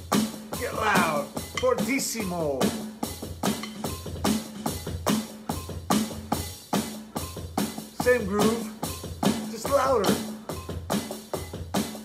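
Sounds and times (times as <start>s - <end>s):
drum groove played with sticks: 0.0s - 12.0s.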